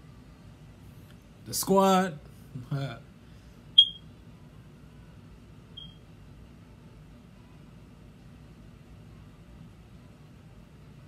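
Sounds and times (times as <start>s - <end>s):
low steady background hum: 0.0s - 11.0s
high-pitched electronic beeps: 3.8s - 4.0s, 5.8s - 6.0s.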